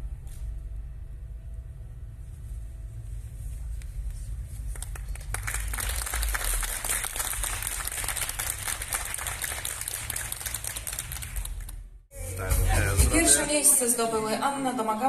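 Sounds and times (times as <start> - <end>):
steady low rumble: 0.0 - 13.6
audience applauding: 4.7 - 11.9.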